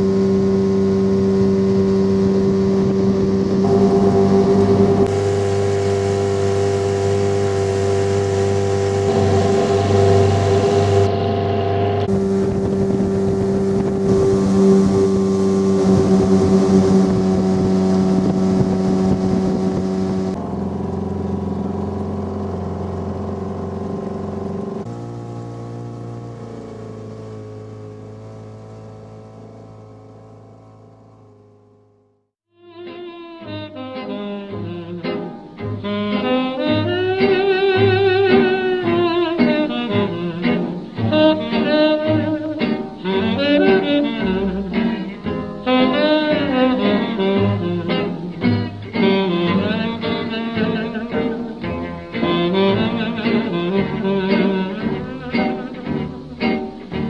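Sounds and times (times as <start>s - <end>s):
outboard motor running: 0.0s - 32.2s, 34.6s - 57.0s.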